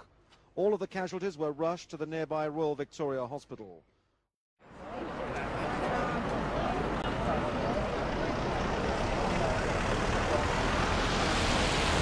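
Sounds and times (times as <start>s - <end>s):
road traffic passing: 4.6s - 12.0s.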